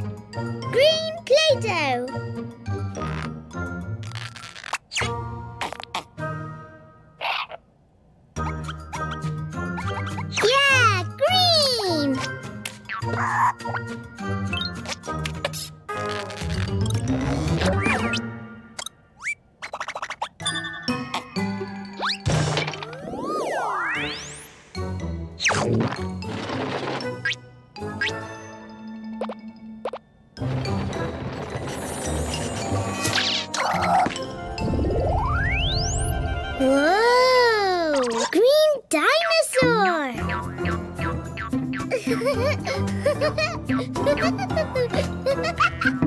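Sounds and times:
children's music with plucked notes: 0.0s - 2.5s, 8.4s - 15.3s
children's background music: 0.0s - 4.0s, 8.4s - 15.5s, 32.5s - 46.0s.

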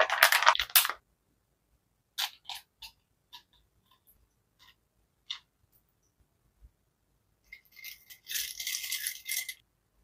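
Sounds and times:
ice cubes clinking in glass: 7.7s - 9.6s.

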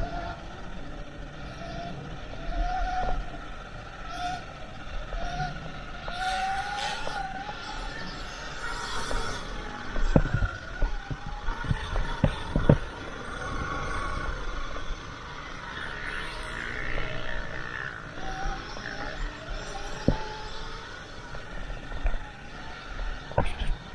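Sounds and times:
electric dirt bike motor whine: 0.0s - 23.9s
rumble of dirt bike ride: 0.0s - 23.9s.

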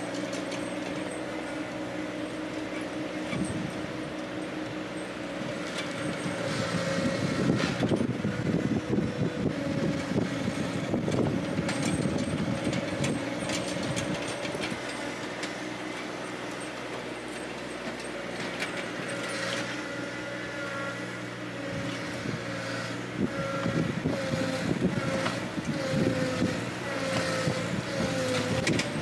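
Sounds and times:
tractor engine running: 0.0s - 29.0s.

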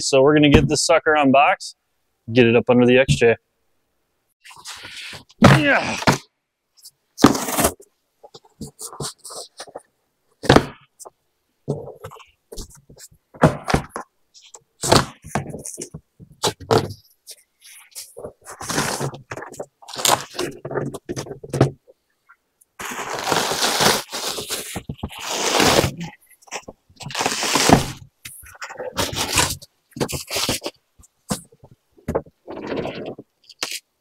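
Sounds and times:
cardboard flaps scraping: 7.2s - 9.8s, 18.0s - 21.7s, 22.8s - 33.3s
paper wrap rustling and crinkling: 17.8s - 21.2s, 22.8s - 31.5s.

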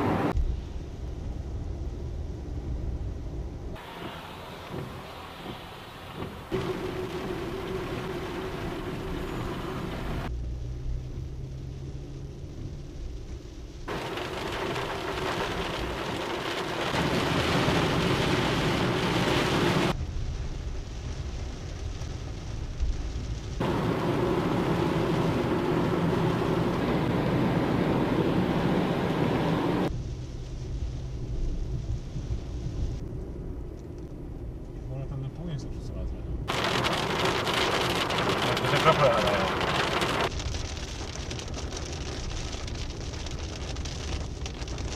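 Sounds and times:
tyre noise on wet road: 0.0s - 35.6s, 36.2s - 44.9s
rain on car: 0.0s - 44.9s.

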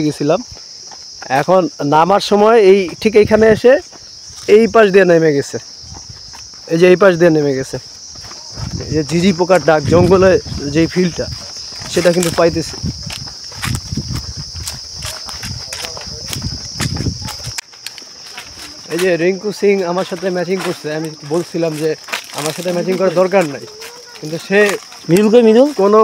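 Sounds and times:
high-pitched insect drone: 0.0s - 26.0s
person speaking: 6.7s - 13.1s, 15.0s - 17.6s, 18.5s - 26.0s.

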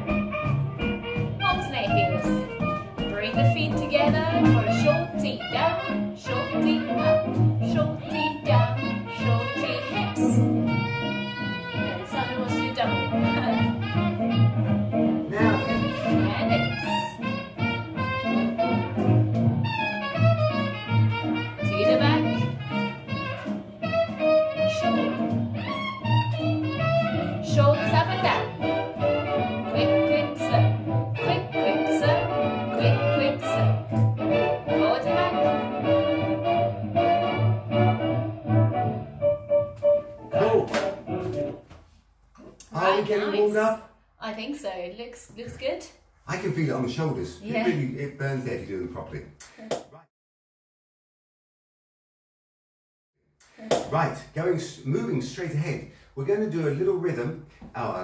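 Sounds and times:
swing jazz music: 0.0s - 42.0s, 46.3s - 49.1s.

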